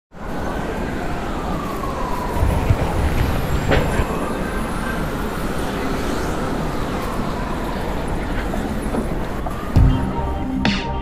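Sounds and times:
street traffic rumble: 0.1s - 11.0s
siren wailing: 0.2s - 11.0s.

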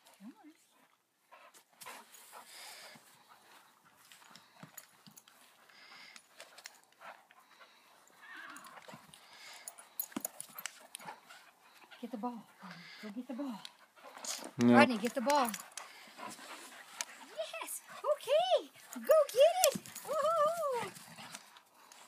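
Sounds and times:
dogs scuffling: 8.6s - 22.0s.

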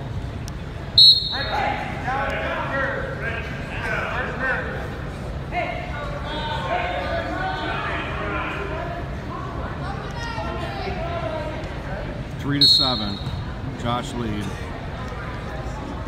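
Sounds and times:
referee's whistle blast: 1.0s - 1.6s, 12.6s - 13.5s
people shouting in a gym: 1.0s - 3.1s, 5.6s - 11.5s, 12.8s - 13.6s.

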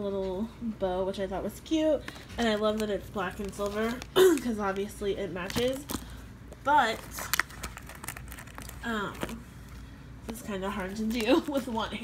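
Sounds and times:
hands rustling items: 2.0s - 12.0s.

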